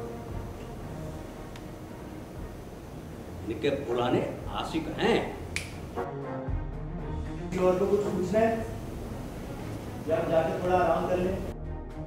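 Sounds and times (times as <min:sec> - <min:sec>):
background music with held tones: 0:00.0 - 0:12.0
man speaking: 0:03.4 - 0:05.5, 0:10.0 - 0:11.5
sharp click: 0:05.5 - 0:05.8.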